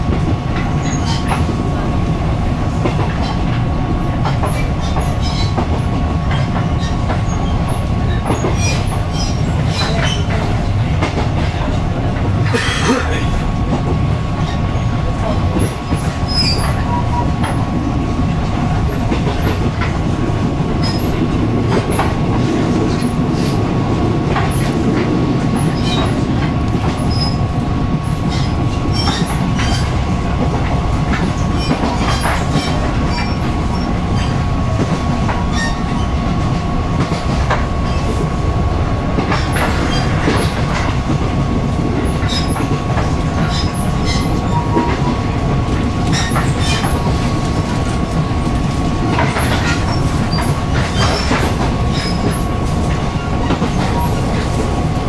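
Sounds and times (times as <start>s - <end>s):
train wheels on rails: 0.0s - 55.0s.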